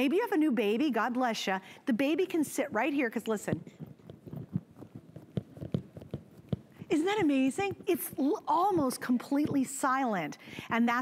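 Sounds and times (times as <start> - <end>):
soft irregular knocks: 3.5 - 9.7.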